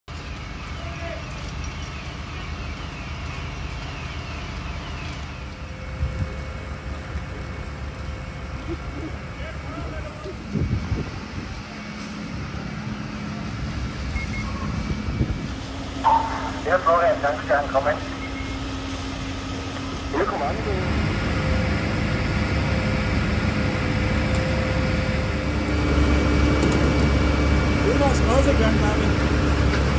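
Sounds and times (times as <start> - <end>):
fire engines low rumble: 0.0 - 29.9.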